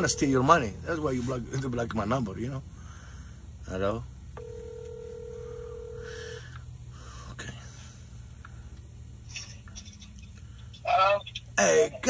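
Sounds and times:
low steady hum: 0:00.0 - 0:12.0
telephone ringback tone: 0:04.4 - 0:06.4.

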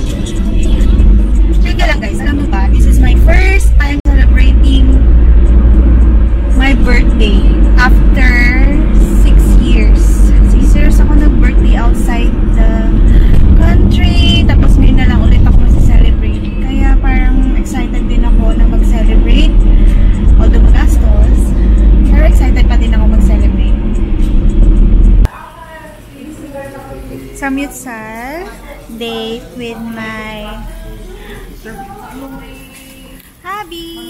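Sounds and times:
road and engine rumble: 0:00.0 - 0:25.3
music in car: 0:15.8 - 0:25.3.

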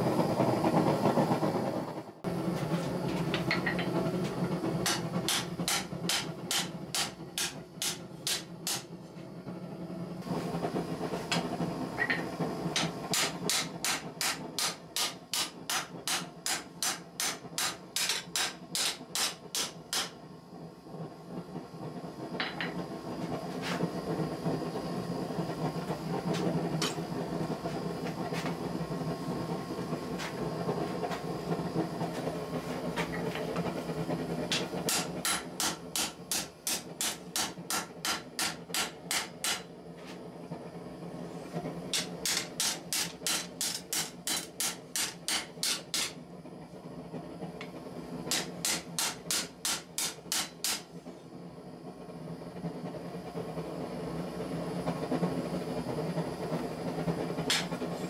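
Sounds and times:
forge rushing hiss: 0:00.0 - 0:58.0
hammer striking hot steel on anvil: 0:03.4 - 0:08.9, 0:11.3 - 0:20.2, 0:26.4 - 0:27.1, 0:34.5 - 0:39.7, 0:41.9 - 0:46.2, 0:48.3 - 0:50.9, 0:57.5 - 0:58.0.

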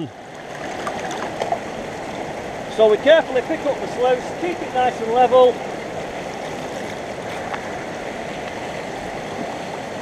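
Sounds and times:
water rushing over stones: 0:00.0 - 0:10.0.

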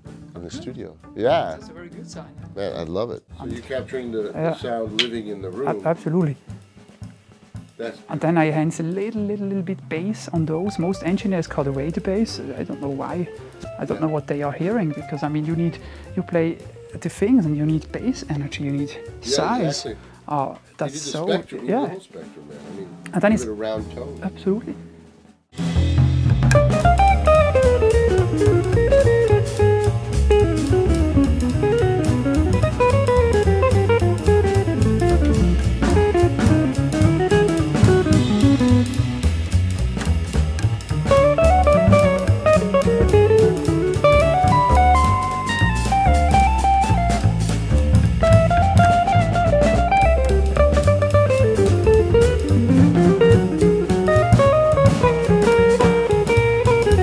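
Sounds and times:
drum kit with cymbals: 0:00.0 - 0:57.0
upright bass: 0:00.0 - 0:57.0
electric guitar single-note lines: 0:10.4 - 0:15.8, 0:26.4 - 0:39.2, 0:40.6 - 0:57.0.

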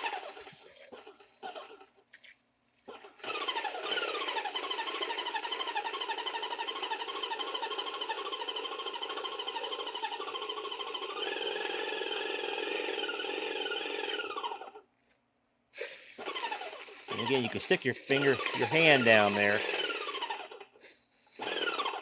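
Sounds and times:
paint sprayer pump motor whine: 0:00.0 - 0:02.1, 0:02.8 - 0:14.9, 0:16.0 - 0:22.0.

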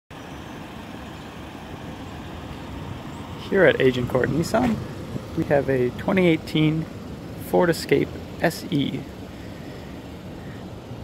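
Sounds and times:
low outdoor rumble: 0:00.1 - 0:11.0.

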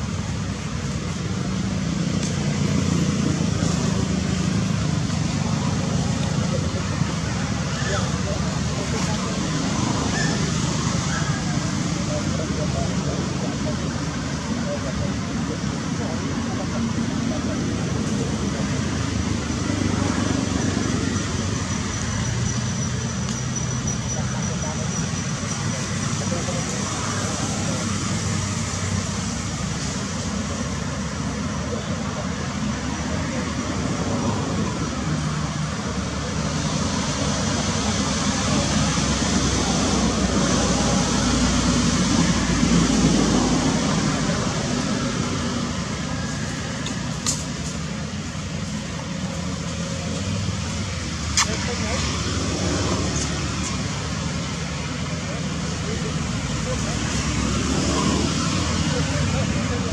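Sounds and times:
distant road traffic: 0:00.0 - 0:59.9.

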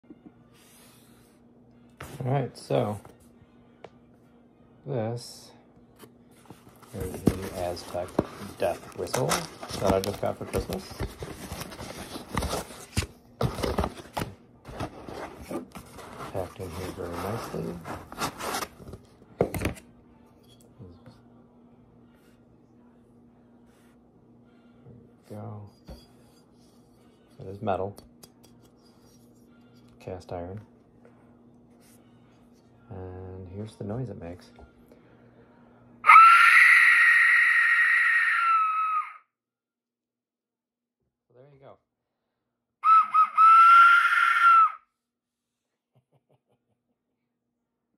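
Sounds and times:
cardboard scraping and rustling: 0:06.6 - 0:19.0
whistle shrieking blast: 0:36.0 - 0:39.2, 0:42.8 - 0:44.9.

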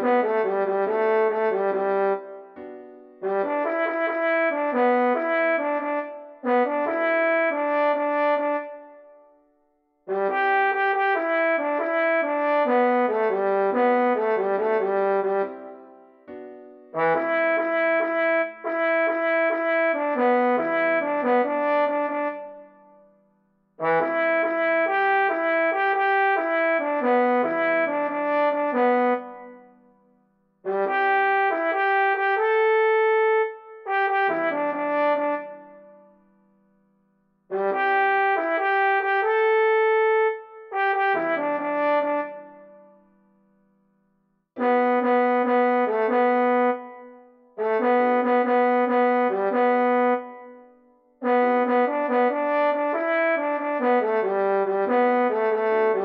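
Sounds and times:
trombone melody: 0:00.0 - 0:09.2, 0:10.1 - 0:23.0, 0:23.8 - 0:29.8, 0:30.6 - 0:36.1, 0:37.5 - 0:43.0, 0:44.6 - 0:56.0.

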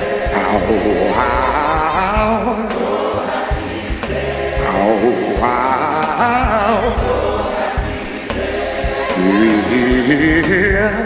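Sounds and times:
choir singing gospel: 0:00.0 - 0:11.0
instrumental accompaniment: 0:00.0 - 0:11.0
solo voice singing: 0:04.6 - 0:07.6, 0:09.0 - 0:11.0.

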